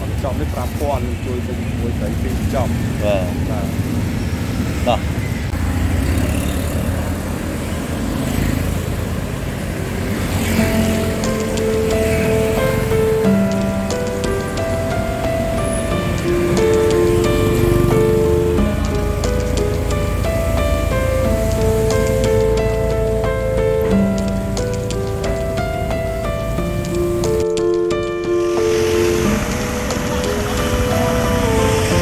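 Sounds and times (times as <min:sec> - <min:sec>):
road traffic rumble: 0:00.0 - 0:32.0
background music with held notes: 0:10.6 - 0:32.0.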